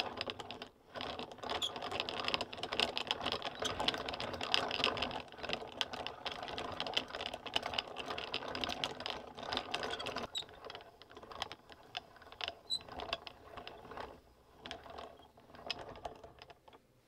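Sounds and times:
yarn winder clattering clicks: 0.0s - 16.8s.

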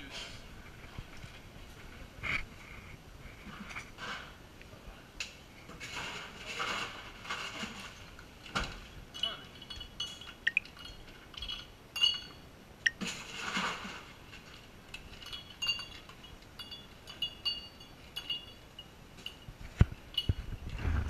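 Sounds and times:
glassware clinking: 9.1s - 13.1s, 15.0s - 19.5s.

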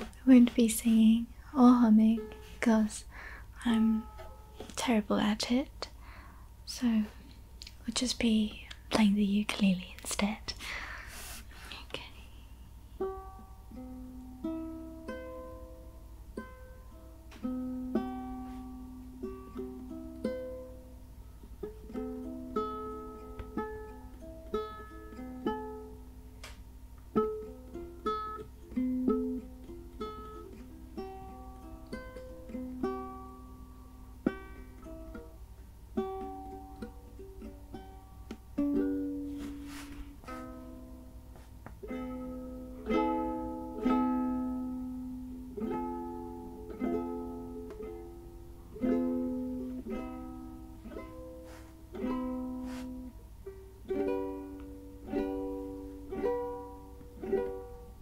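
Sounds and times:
fingerpicked ukulele melody: 0.0s - 4.9s, 12.8s - 58.0s.

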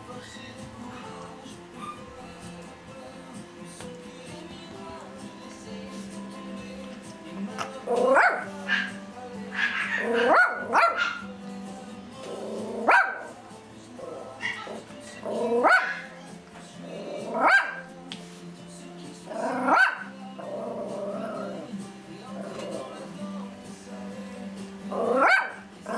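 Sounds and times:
small dog barking: 7.9s - 11.3s, 12.8s - 13.4s, 14.4s - 16.2s, 17.3s - 17.9s, 19.4s - 20.2s, 25.0s - 25.9s.

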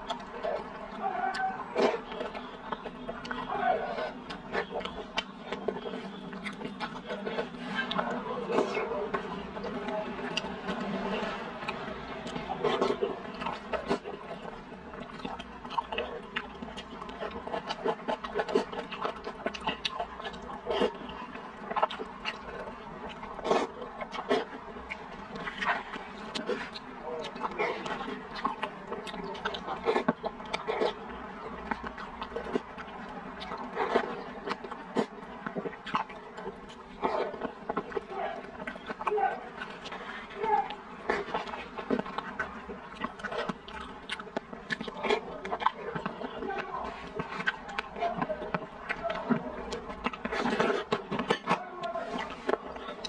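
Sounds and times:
wet chewing and slurping: 0.0s - 53.0s.

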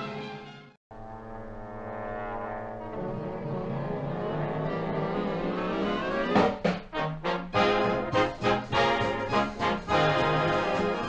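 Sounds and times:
military brass band music: 0.0s - 11.0s.

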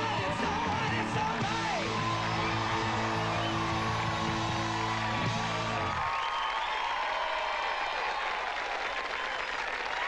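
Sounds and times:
audience applauding and cheering: 0.0s - 10.0s.

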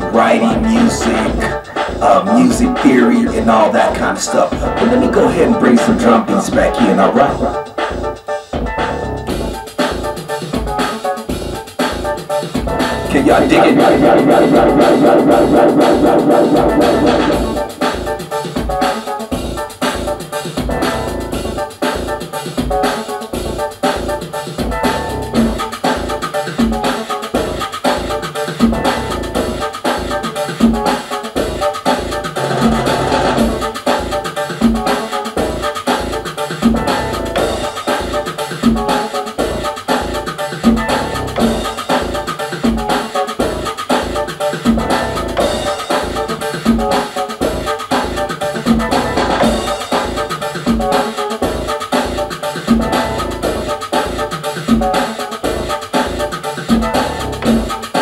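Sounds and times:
electronic latin groove: 0.0s - 58.0s.

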